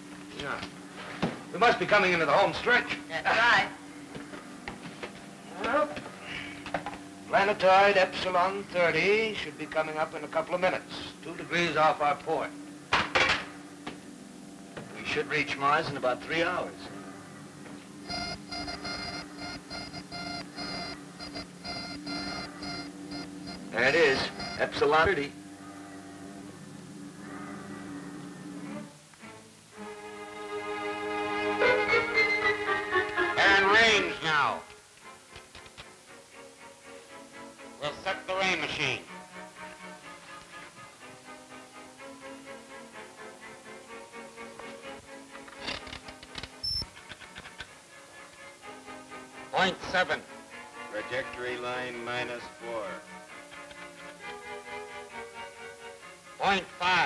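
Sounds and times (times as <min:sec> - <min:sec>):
steady low hum: 0:00.0 - 0:31.6
music with sustained notes: 0:00.0 - 0:57.0
buzzy electronic beeps: 0:18.0 - 0:25.4.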